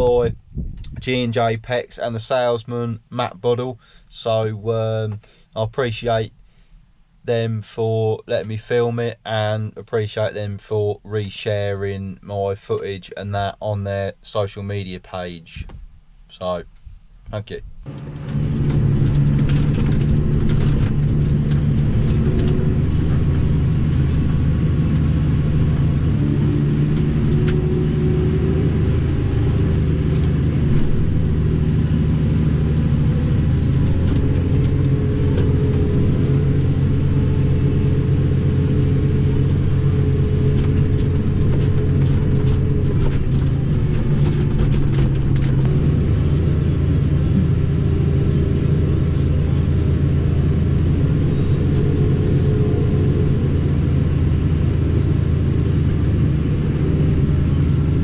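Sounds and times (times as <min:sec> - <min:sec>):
tractor engine droning: 0:00.0 - 0:06.4, 0:17.8 - 0:58.0.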